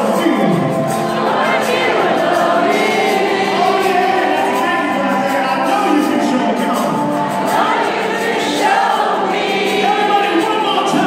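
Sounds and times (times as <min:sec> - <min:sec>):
live rock band and orchestra: 0:00.0 - 0:11.0
youth choir singing: 0:00.0 - 0:11.0.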